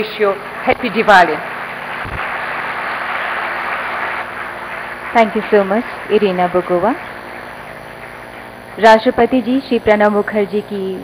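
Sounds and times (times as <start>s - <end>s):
audience applauding: 0.0s - 8.4s.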